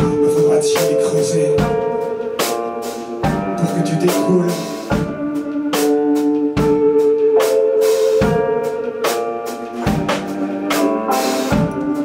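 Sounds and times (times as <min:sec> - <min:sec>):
electric guitar: 0:01.1 - 0:12.0.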